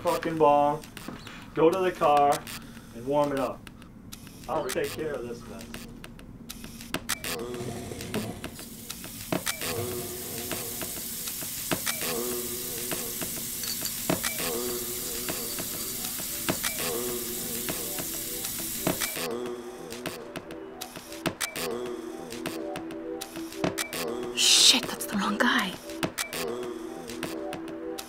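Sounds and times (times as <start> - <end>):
water running from a tap: 9.7 - 19.1
music with repeating phrase: 12.0 - 28.0.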